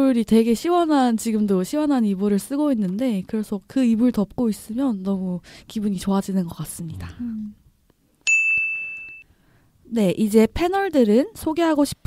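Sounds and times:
high bell ding: 8.2s - 9.3s.

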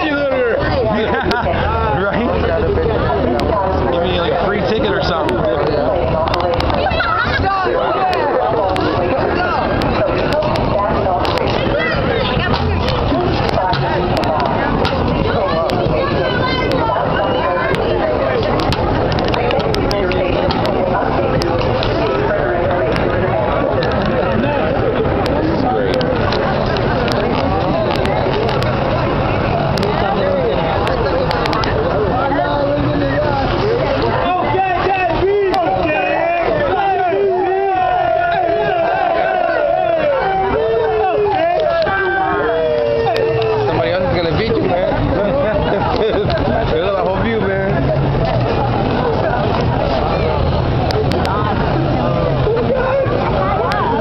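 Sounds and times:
people talking indistinctly: 0.0s - 54.0s.

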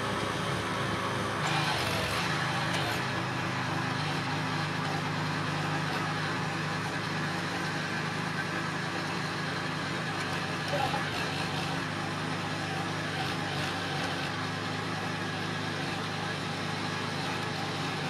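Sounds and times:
small tractor engine running: 0.0s - 18.0s.

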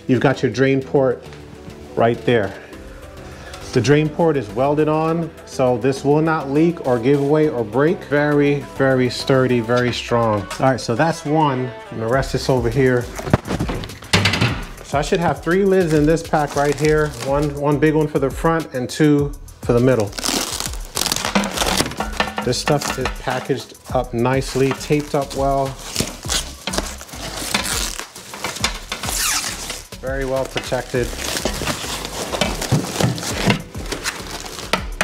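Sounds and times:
plastic and cardboard crinkling: 12.8s - 17.6s, 19.8s - 35.0s
metal hatch lid knocking: 13.5s - 14.8s.

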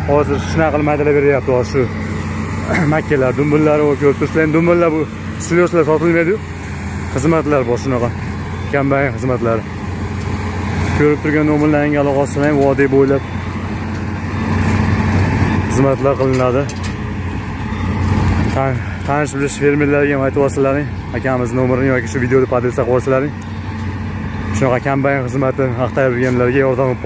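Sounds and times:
man talking: 0.0s - 9.7s, 10.9s - 13.3s, 15.6s - 16.8s, 18.5s - 23.4s, 24.5s - 27.0s
forage harvester droning: 0.0s - 27.0s.

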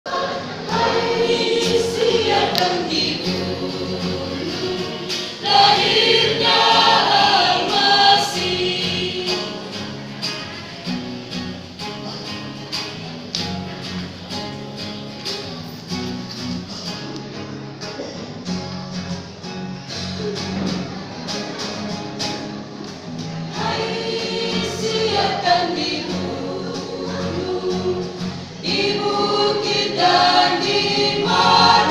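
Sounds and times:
choir singing: 0.0s - 10.3s, 23.5s - 31.9s.

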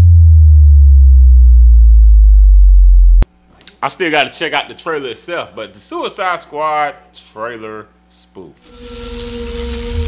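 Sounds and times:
deep synthesized bass drop: 0.0s - 3.3s.

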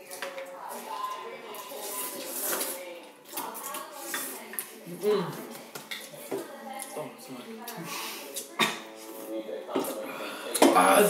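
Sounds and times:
utensils clicking against dishes: 0.0s - 4.8s.

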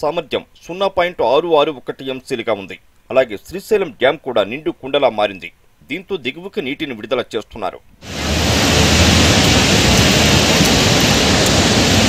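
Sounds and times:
floodwater rushing through spillway: 8.0s - 12.0s.

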